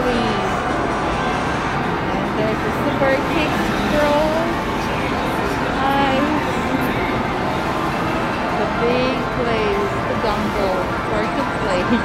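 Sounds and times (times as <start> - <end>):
voices: 0.0 - 1.4, 2.0 - 12.0
arcade game machine sounds: 0.0 - 12.0.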